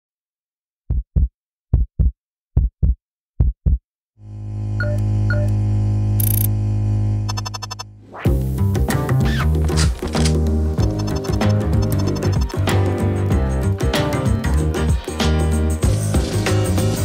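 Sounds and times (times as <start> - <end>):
heartbeat-like double thuds: 0.9 - 3.8
low synthesizer drone: 4.2 - 8.2
fast stuttering flutter: 7.3 - 7.8, 9.3 - 12.6.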